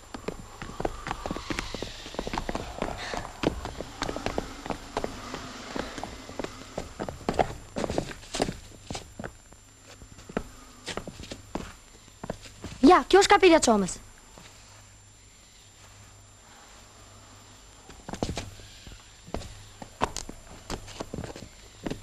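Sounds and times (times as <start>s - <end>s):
footsteps on hard ground: 0.0s - 12.8s
steady low hum: 0.0s - 22.0s.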